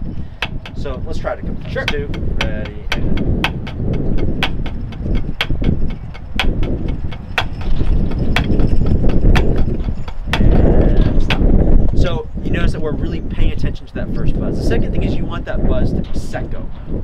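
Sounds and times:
drumsticks on practice pad: 1.7 - 7.6.

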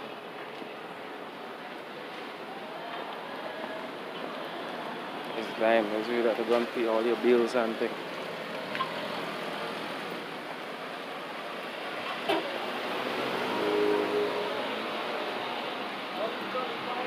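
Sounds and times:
steady traffic noise: 0.0 - 17.0
car driving past: 12.0 - 16.2.

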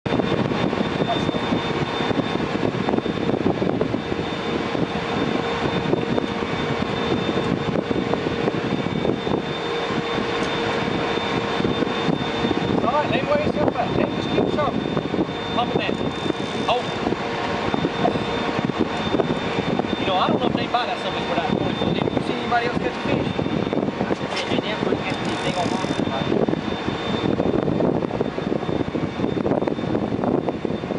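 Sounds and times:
boat engine running: 0.0 - 29.7
rush of wind and water: 0.0 - 30.9.

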